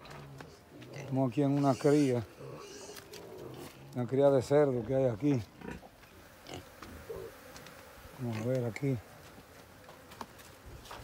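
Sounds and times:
pigs grunting: 0:00.8 - 0:04.0, 0:05.4 - 0:07.3.

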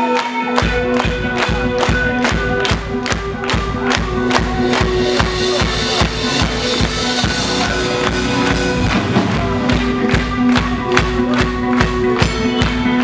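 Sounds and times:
punk rock band playing live: 0:00.0 - 0:13.0
drums beating: 0:00.6 - 0:13.0.

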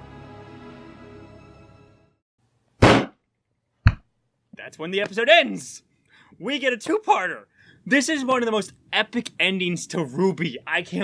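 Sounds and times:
sharp pop on microphone: 0:02.8 - 0:03.2, 0:03.8 - 0:04.1.

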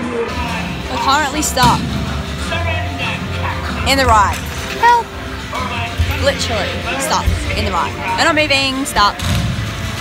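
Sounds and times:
recorded voices: 0:00.0 - 0:09.5
background music: 0:00.0 - 0:10.0.

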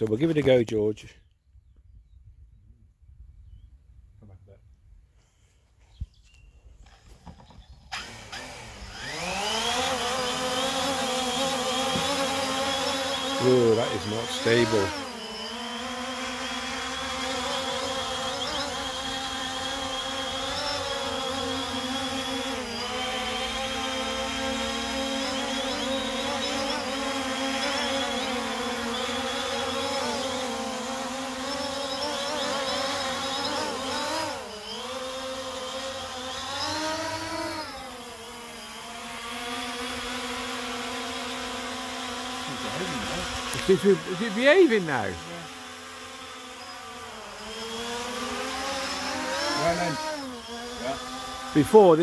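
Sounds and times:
drone propellers buzzing: 0:06.8 - 0:52.0.

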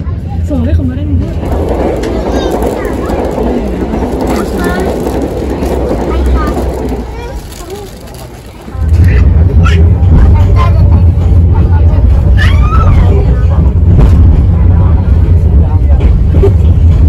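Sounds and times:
loud low rumble: 0:00.0 - 0:17.0
passing train rushing: 0:00.0 - 0:17.0
people talking: 0:00.0 - 0:17.0
train carriage running noise: 0:00.0 - 0:17.0.

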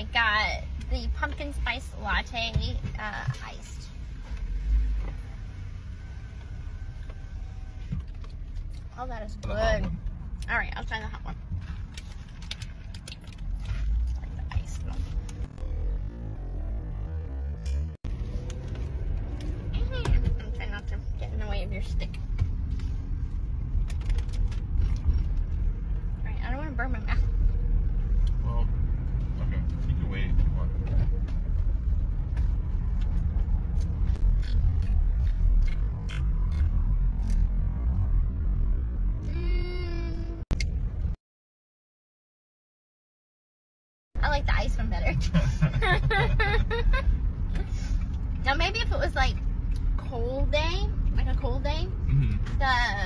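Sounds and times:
car cabin rumble: 0:00.0 - 0:41.1, 0:44.2 - 0:53.0.

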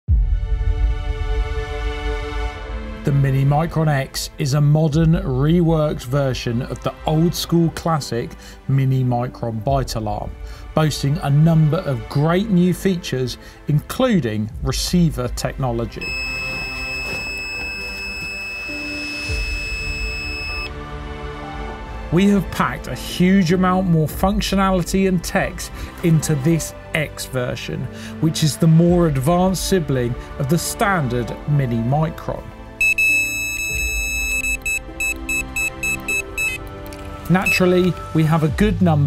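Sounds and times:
background music: 0:00.1 - 0:39.0
high-pitched bite alarm tone: 0:16.0 - 0:20.7, 0:32.8 - 0:36.6.

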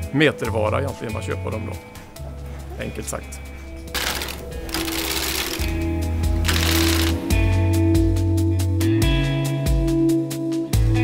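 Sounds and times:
background music: 0:00.0 - 0:11.0
knitting machine carriage rattling: 0:03.9 - 0:07.2.

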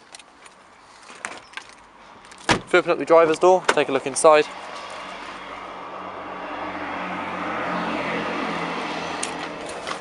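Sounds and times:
vehicle rushing past: 0:04.4 - 0:10.0.

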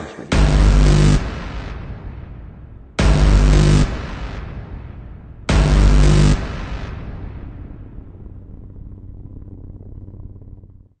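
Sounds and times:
steady low hum: 0:00.0 - 0:11.0
low cinematic rumble: 0:00.3 - 0:11.0.

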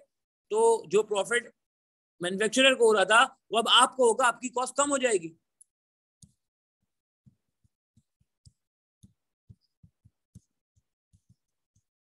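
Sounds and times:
stylus tapping on pen tablet: 0:07.2 - 0:11.9.

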